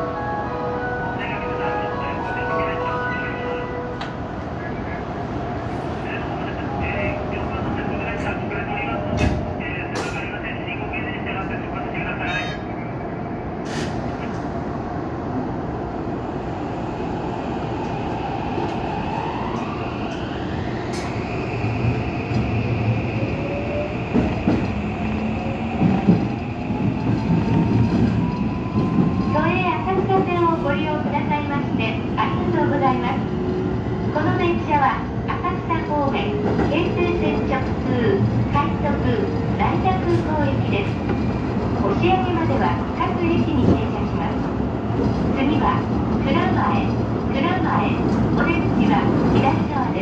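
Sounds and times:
train running noise: 0:00.0 - 0:14.9, 0:17.0 - 0:50.0
stopped train hum: 0:00.0 - 0:49.4.

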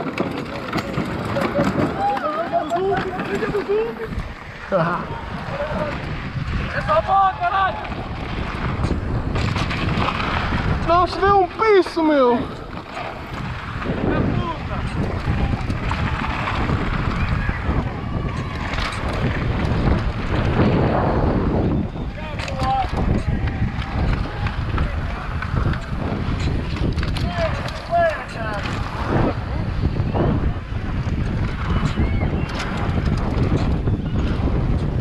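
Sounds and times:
bike knocks and rattles: 0:00.0 - 0:04.2, 0:05.5 - 0:35.0
tyres rumbling over dirt: 0:00.0 - 0:35.0
wind on camera microphone: 0:00.0 - 0:35.0.

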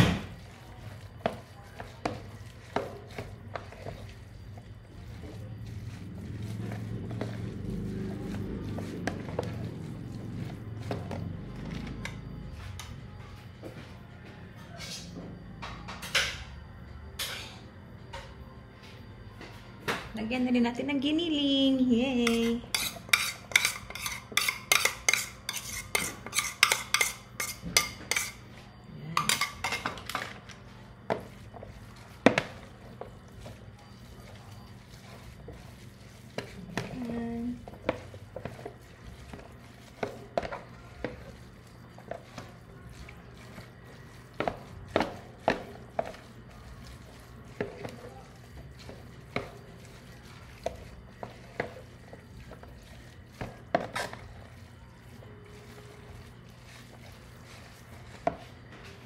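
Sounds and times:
spoon scraping ceramic bowl: 0:22.2 - 0:59.0.

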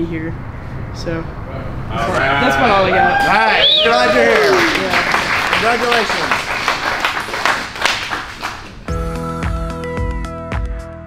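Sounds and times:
small group clapping: 0:03.0 - 0:08.9
background music: 0:08.9 - 0:11.0.

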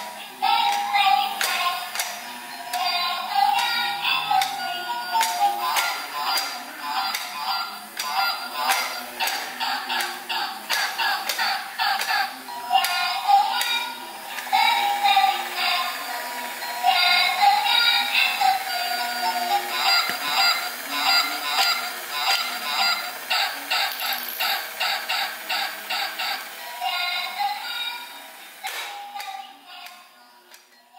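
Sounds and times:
toy playing tinny electronic tune: 0:00.0 - 0:29.8.

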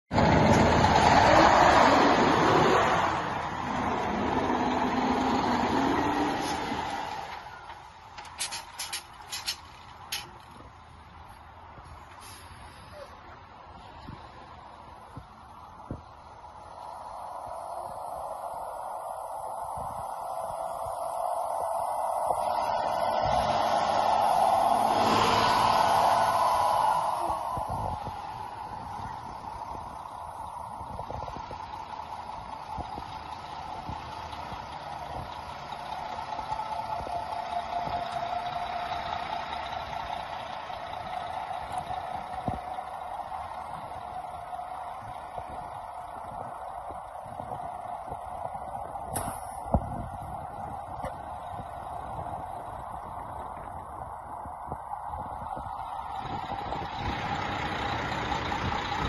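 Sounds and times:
truck pulling away on gravel: 0:00.1 - 0:10.8, 0:16.0 - 0:59.0
truck diesel engine running: 0:00.1 - 0:59.0.

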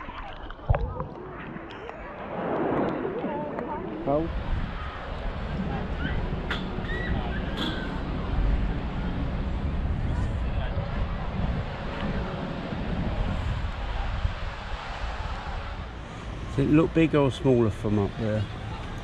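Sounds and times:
faint voices: 0:00.0 - 0:19.0
wind buffeting microphone: 0:00.0 - 0:19.0.

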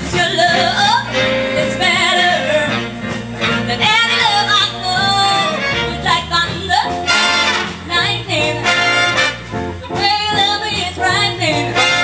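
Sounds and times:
woman singing: 0:00.0 - 0:03.0, 0:03.7 - 0:09.2, 0:09.8 - 0:12.0
big band playing: 0:00.0 - 0:12.0.

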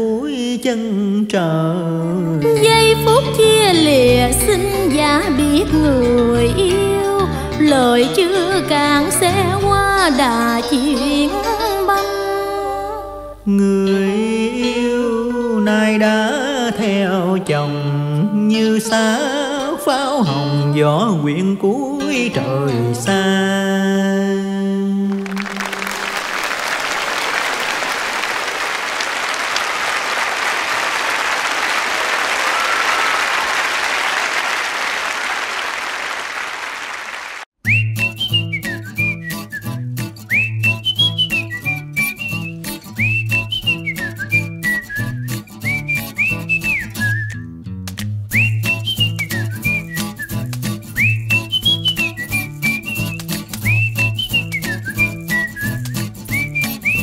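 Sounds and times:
audience applauding: 0:25.1 - 0:37.5
upbeat tune with whistle-like melody: 0:37.6 - 0:57.0.

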